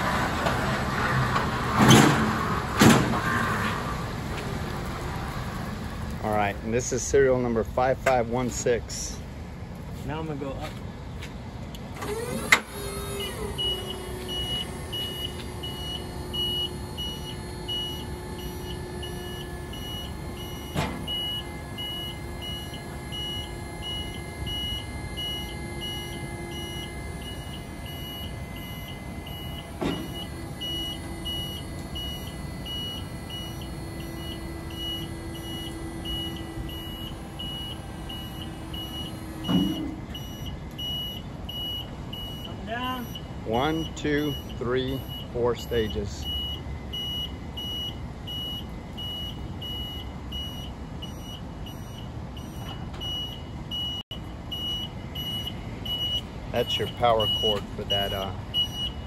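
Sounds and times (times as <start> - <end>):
hydraulic pump humming: 12.0 - 42.6
motion alarm beeping: 13.0 - 59.0.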